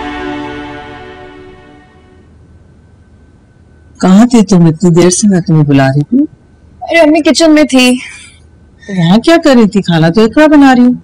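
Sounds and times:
music with sustained notes: 0.0s - 2.3s.

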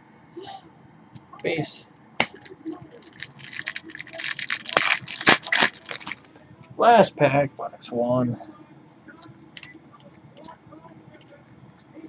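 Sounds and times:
foil wrapper crinkling: 2.9s - 6.3s.

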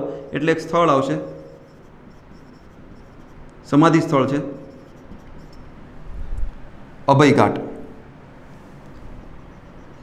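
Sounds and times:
marker scratching on whiteboard: 0.3s - 6.0s, 8.9s - 10.0s.

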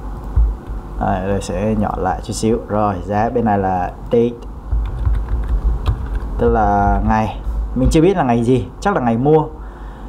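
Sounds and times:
computer keyboard key clicks: 4.8s - 6.3s.

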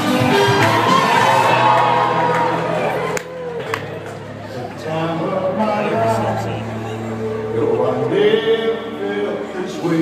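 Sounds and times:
crowd voices: 0.0s - 10.0s.

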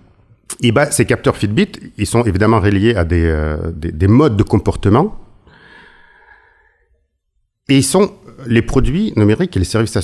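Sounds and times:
faint breath into microphone: 5.4s - 7.0s.

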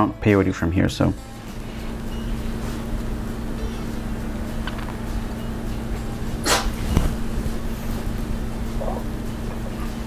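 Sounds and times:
machine humming: 1.1s - 10.0s.

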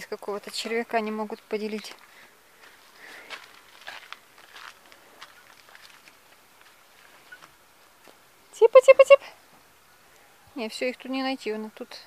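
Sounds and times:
footsteps on gravel: 1.8s - 8.2s.

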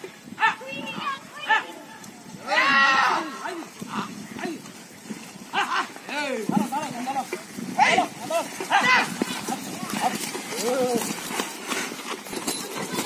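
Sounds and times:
men shouting calls: 0.3s - 4.7s, 5.5s - 11.2s.

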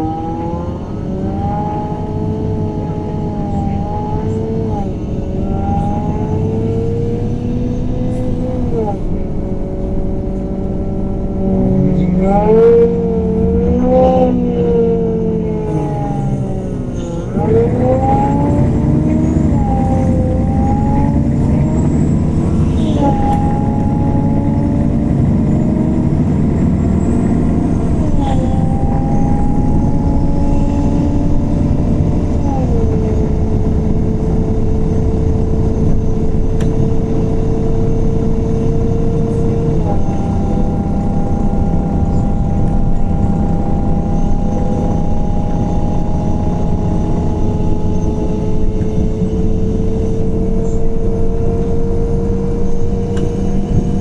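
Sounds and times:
bus engine and gearbox whine: 0.0s - 54.0s.

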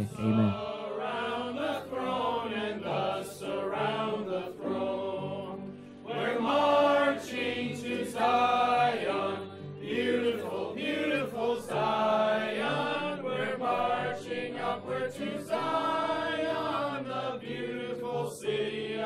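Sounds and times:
low sustained bass notes: 0.0s - 0.6s
choir singing: 0.0s - 19.0s.

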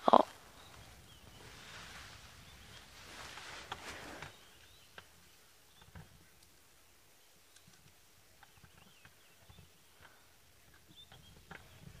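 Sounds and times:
bird chirps: 4.2s - 6.0s, 8.4s - 12.0s.

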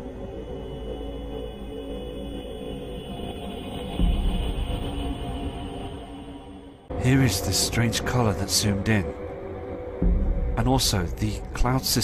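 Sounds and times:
low rumble: 0.0s - 11.9s
dark ambient drone music: 0.0s - 12.0s.

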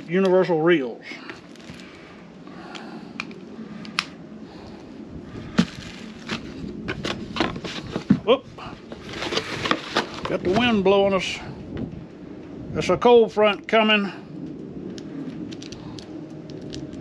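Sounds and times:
wind on microphone: 0.0s - 17.0s
paper and plastic rustling: 1.2s - 2.0s, 5.5s - 10.8s.

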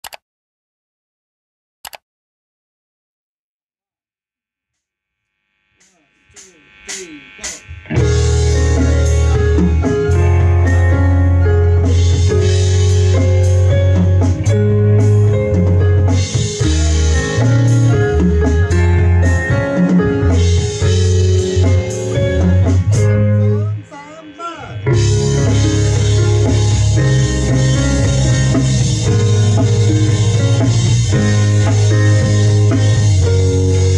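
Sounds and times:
sliding bent guitar notes: 5.8s - 33.9s
rock band playing: 6.4s - 33.9s.

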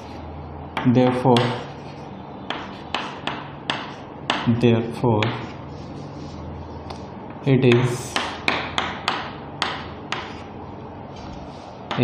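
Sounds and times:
chalk tapping on a chalkboard: 0.8s - 1.7s, 2.5s - 4.5s, 5.2s - 5.6s, 7.7s - 10.4s
chalk scraping on a chalkboard: 5.3s - 6.5s, 11.2s - 11.9s.

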